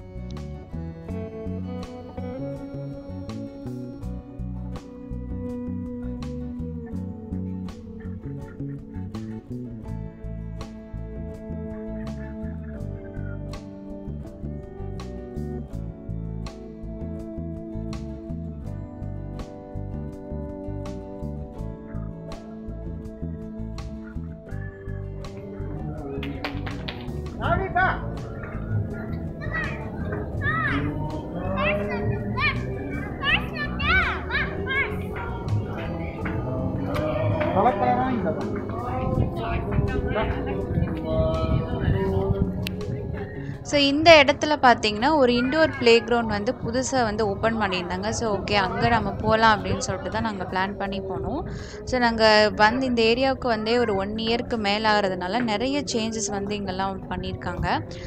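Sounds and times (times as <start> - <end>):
background music: 0.0 - 58.0
children calling and squealing: 28.1 - 55.0
woman talking: 39.9 - 58.0.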